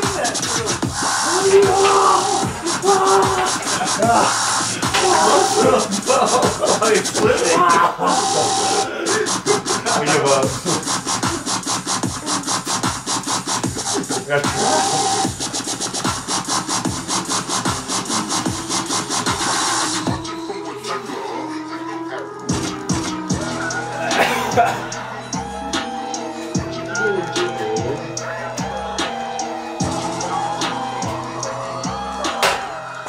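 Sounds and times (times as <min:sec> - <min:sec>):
electronic music with fast beat: 0:00.0 - 0:33.0.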